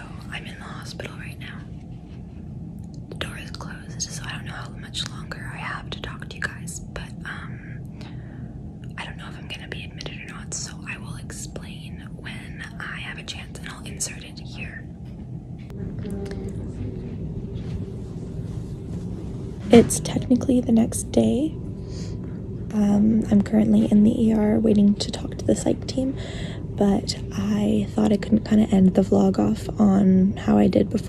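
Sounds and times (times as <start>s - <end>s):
woman whispering: 0.0s - 1.8s, 3.0s - 7.9s, 8.8s - 14.9s, 15.7s - 17.0s
steady low hum: 0.0s - 31.0s.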